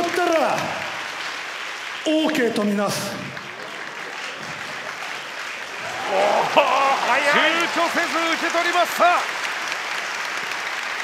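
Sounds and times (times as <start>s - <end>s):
audience applauding: 0.0s - 11.0s
man's voice: 6.2s - 9.3s.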